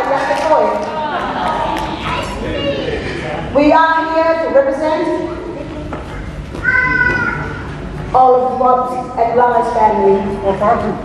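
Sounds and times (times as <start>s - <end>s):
woman speaking over microphone: 0.0s - 0.9s, 3.6s - 5.3s, 8.1s - 11.0s.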